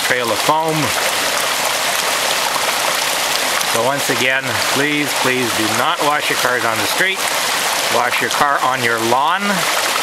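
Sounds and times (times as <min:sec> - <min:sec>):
creek running over stones: 0:00.0 - 0:10.0
pipe water pouring onto rocks: 0:00.0 - 0:10.0.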